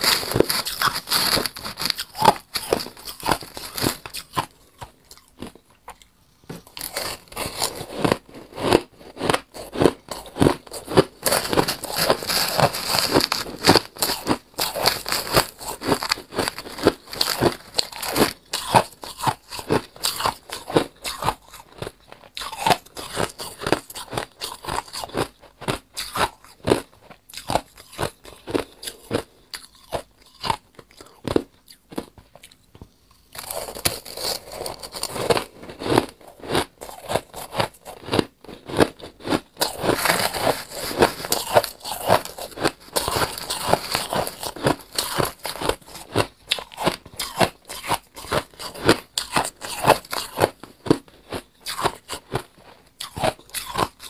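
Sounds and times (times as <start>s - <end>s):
spoon crunching shaved ice: 0.0s - 32.6s, 33.4s - 54.0s.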